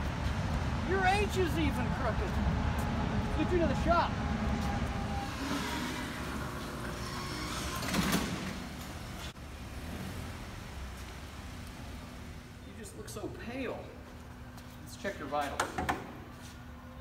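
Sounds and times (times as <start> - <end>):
car driving slowly: 8.6 - 15.0.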